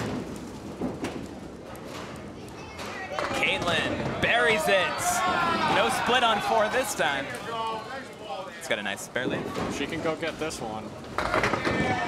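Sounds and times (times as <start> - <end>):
ball rolling down wooden lane: 0.0 - 4.3, 9.3 - 12.0.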